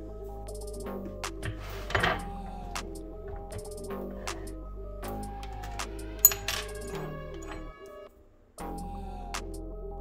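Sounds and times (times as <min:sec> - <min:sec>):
instrumental background music: 0:00.0 - 0:10.0
sharp metallic clink: 0:06.2 - 0:07.7.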